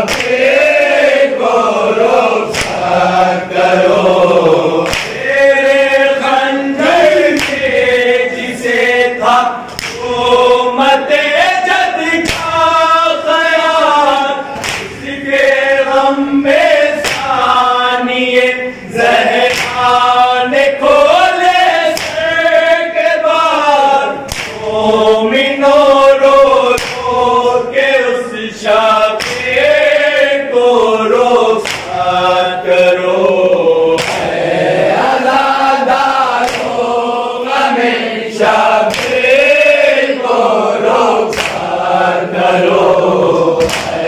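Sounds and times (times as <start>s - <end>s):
men chanting in unison: 0.0s - 44.0s
chest beating slaps: 0.1s - 0.4s, 2.5s - 3.0s, 4.8s - 5.2s, 7.3s - 7.7s, 9.7s - 10.2s, 12.2s - 12.7s, 14.6s - 15.1s, 17.0s - 17.4s, 19.4s - 19.9s, 22.0s - 22.3s, 24.3s - 24.7s, 26.8s - 27.2s, 29.2s - 29.6s, 31.6s - 32.0s, 34.0s - 34.4s, 36.4s - 36.8s, 38.9s - 39.2s, 41.3s - 41.7s, 43.6s - 44.0s.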